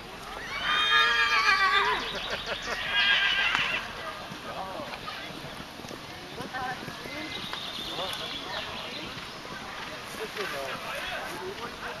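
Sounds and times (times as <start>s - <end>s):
horse whinnying: 0.4s - 3.9s.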